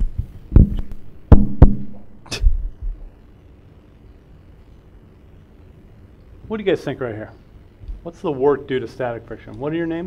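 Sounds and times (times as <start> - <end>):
microphone handling knocks: 0.0 - 3.0.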